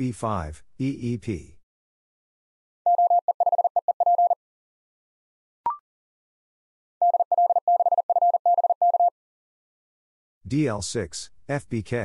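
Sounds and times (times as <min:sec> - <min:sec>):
morse code tone: 0:02.9 - 0:04.4, 0:07.0 - 0:09.1.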